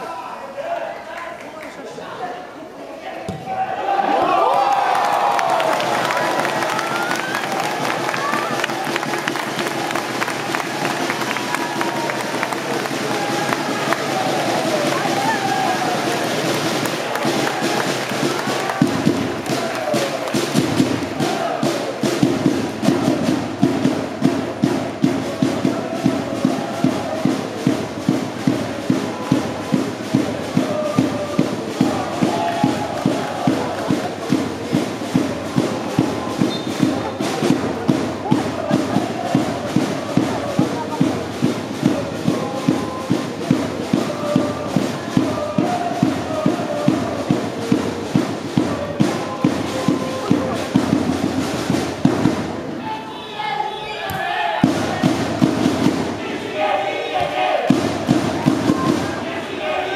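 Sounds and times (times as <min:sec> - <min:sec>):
football supporters chanting: 0:03.2 - 0:59.9.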